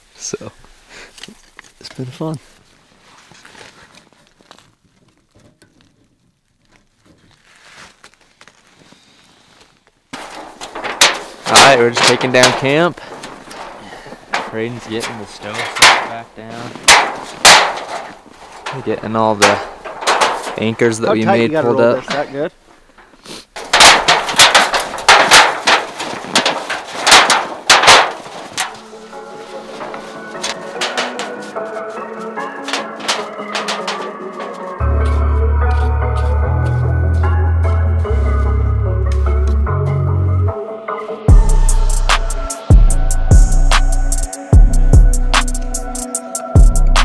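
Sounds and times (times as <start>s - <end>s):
wood stove crackling: 0.1s - 2.7s, 9.6s - 36.9s
kindling being laid: 10.1s - 21.4s, 22.9s - 35.1s
metal sheet crashing: 10.2s - 22.3s, 23.6s - 35.0s
music: 28.7s - 47.0s.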